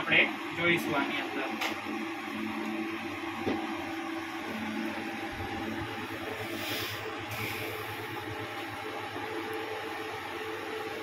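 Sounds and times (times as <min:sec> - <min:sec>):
background hum and rumble: 0:00.0 - 0:11.0.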